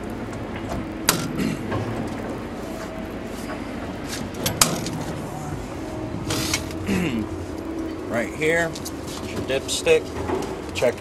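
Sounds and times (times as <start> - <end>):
metal door scraping: 4.0 - 6.8.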